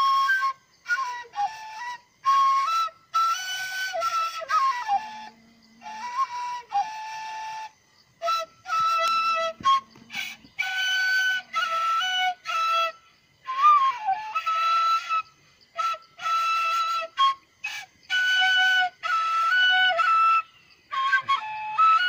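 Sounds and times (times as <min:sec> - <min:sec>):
bamboo flute melody: 0:00.0 - 0:22.0.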